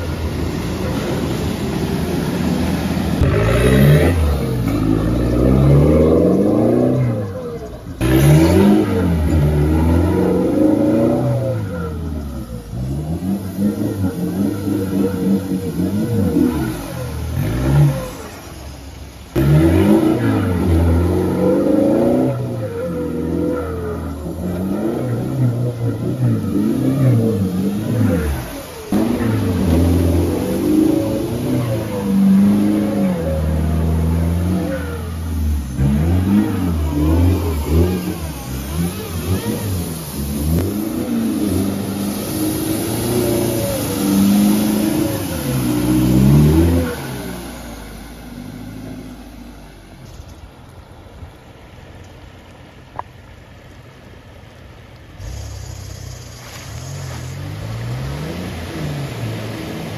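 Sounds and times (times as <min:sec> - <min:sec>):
engine revving hard: 0:03.0 - 0:18.7, 0:19.3 - 0:49.3.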